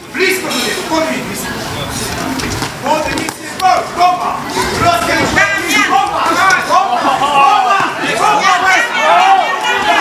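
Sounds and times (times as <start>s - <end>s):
crowd shouting: 3.7s - 10.0s.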